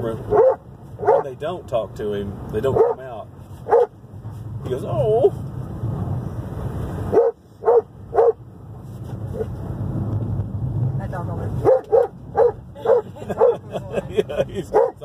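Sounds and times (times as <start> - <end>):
road noise: 0.0 - 15.0
wind rushing at car window: 0.0 - 15.0
dog barking: 0.3 - 1.3, 2.7 - 3.0, 3.7 - 3.9, 7.1 - 8.4, 11.6 - 13.6, 14.7 - 15.0.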